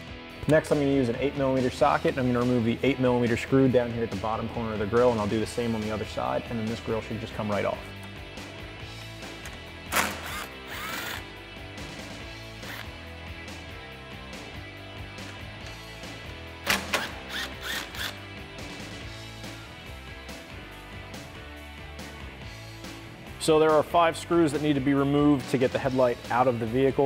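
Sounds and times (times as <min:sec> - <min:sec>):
background music: 0:00.0 - 0:27.0
cordless screwdriver running: 0:09.9 - 0:11.3, 0:12.6 - 0:13.0, 0:17.0 - 0:18.2.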